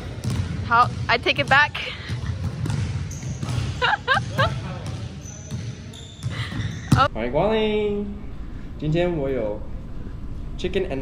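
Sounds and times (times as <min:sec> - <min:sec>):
basketballs bouncing on hardwood: 0:00.0 - 0:07.1.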